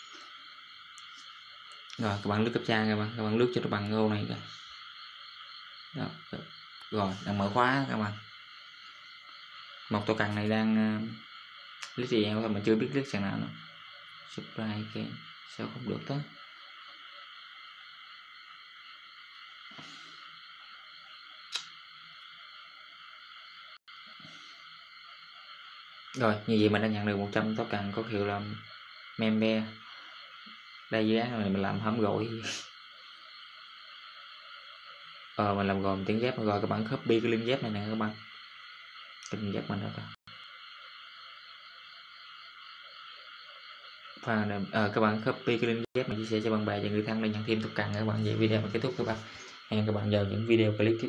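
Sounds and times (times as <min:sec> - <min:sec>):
steady background hiss: 0:00.0 - 0:51.0
sharp click: 0:21.5 - 0:21.8.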